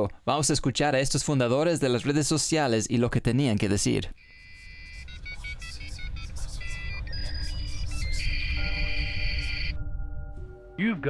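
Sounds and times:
modem beeps and tones: 0:04.2 - 0:09.8.

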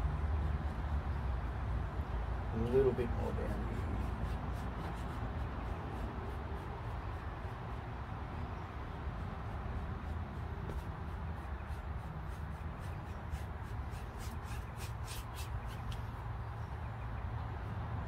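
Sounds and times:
low outdoor rumble: 0:00.0 - 0:18.0
brush scrubbing paint on canvas: 0:02.6 - 0:08.0, 0:08.8 - 0:16.2.

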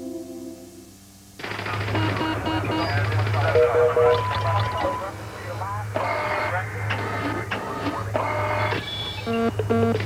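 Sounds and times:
low electronic hum: 0:00.0 - 0:10.0
short electronic beeps: 0:02.0 - 0:03.0, 0:08.8 - 0:10.0.

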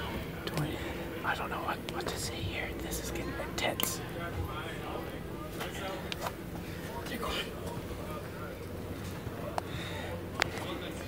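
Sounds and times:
person whispering: 0:00.5 - 0:04.0.

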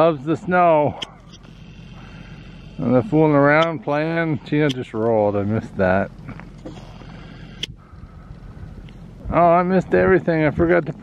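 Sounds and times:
wind rumble on microphone: 0:07.4 - 0:11.0.

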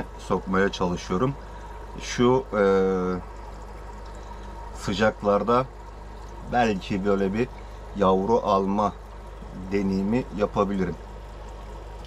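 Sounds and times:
aquarium water bubbling: 0:00.0 - 0:12.0
low steady hum: 0:00.0 - 0:12.0.

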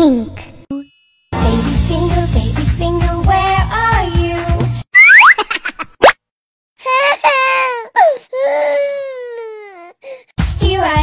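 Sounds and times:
rising cartoon sound effect: 0:05.0 - 0:05.4
baby crying: 0:06.8 - 0:10.2.

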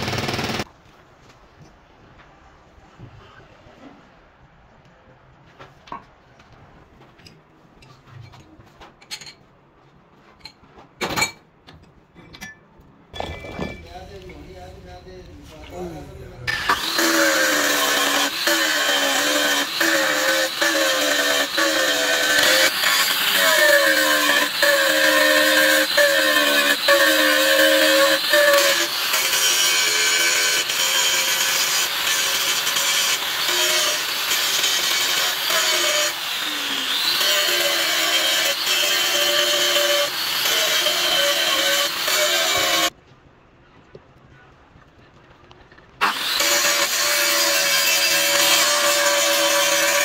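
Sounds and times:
angle grinder cutting metal: 0:00.0 - 0:00.7, 0:16.5 - 0:42.9, 0:46.0 - 0:50.0.

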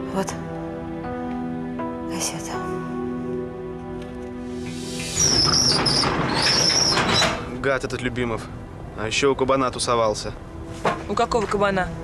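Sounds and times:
outdoor noise: 0:00.0 - 0:12.0
door squealing on hinges: 0:05.0 - 0:07.5.

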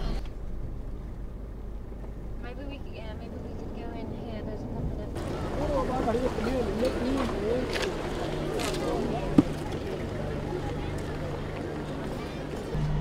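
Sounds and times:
outdoor crowd voices: 0:00.0 - 0:00.3, 0:01.0 - 0:13.0
car engine rumble and road noise: 0:00.0 - 0:13.0.

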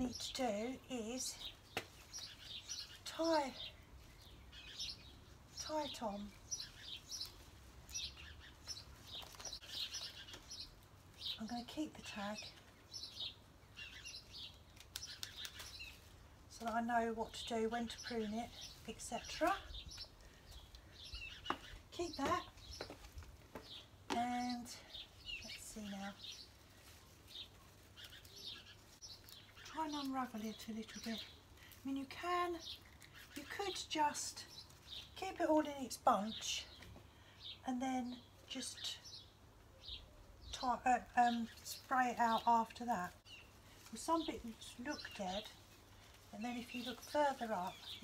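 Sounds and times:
songbirds chirping: 0:00.0 - 0:48.0.

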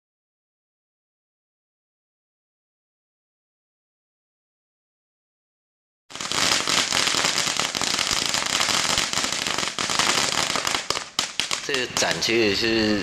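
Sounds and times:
firecrackers crackling: 0:06.1 - 0:12.6.

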